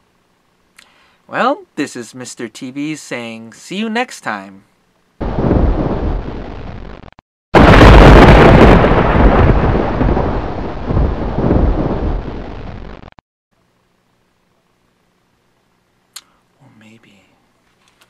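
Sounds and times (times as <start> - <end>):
thunder crack: 5.2 - 13.1
thunder rumbling: 5.2 - 13.1.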